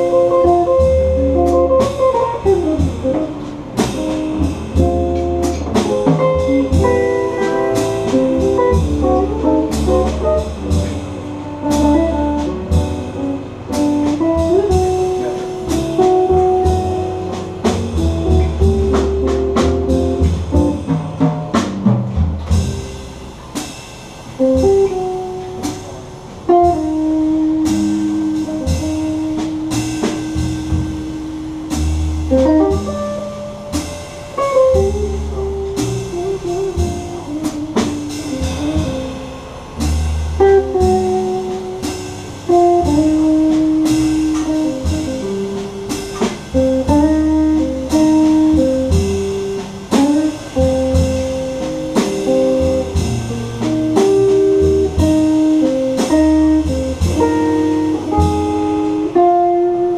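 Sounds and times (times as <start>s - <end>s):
guitar melody: 0.0s - 21.9s, 24.4s - 59.9s
upright bass notes: 0.0s - 59.9s.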